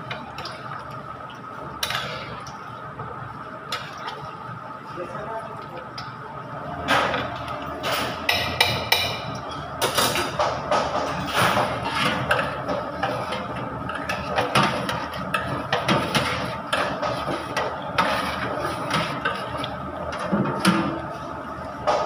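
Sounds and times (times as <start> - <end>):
steady background noise: 0.0 - 22.0.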